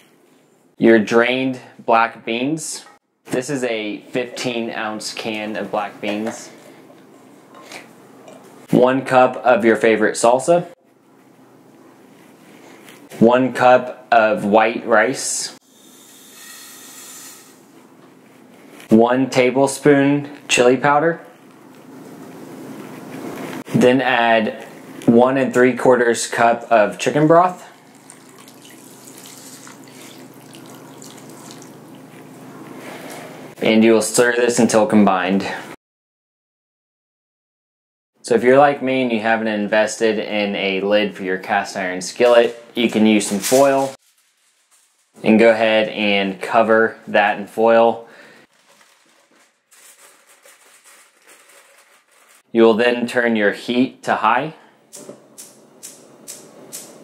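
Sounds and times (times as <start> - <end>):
liquid splashing and trickling: 27.7 - 32.1
broth pouring into a skillet: 27.8 - 31.8.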